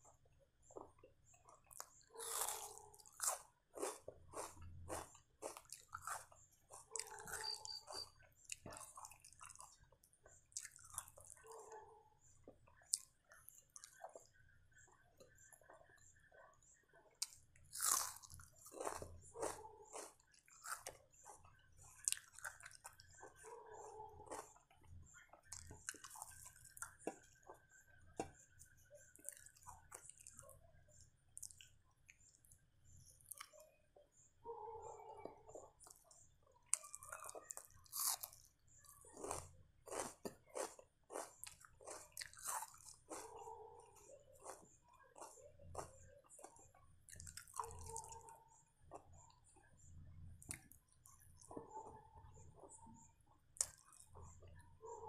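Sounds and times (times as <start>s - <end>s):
person biting and chewing onion: 1.7s - 9.6s, 17.2s - 21.4s, 36.7s - 38.5s, 39.1s - 48.3s.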